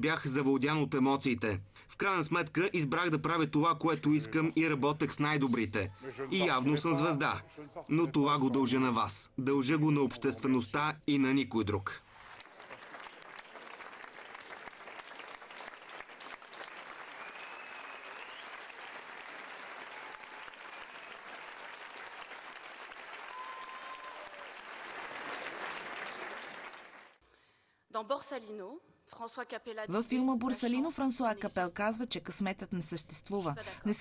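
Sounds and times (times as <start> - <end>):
audience applauding: 12.1 - 27.2.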